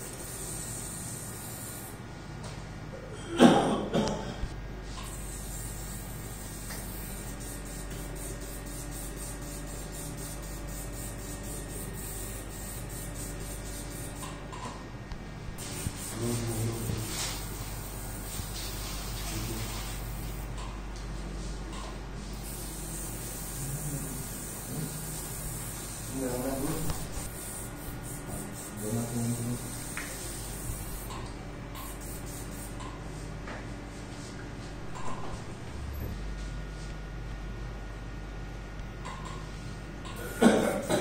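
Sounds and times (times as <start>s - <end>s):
equipment hiss and mains hum: 0.0s - 41.0s.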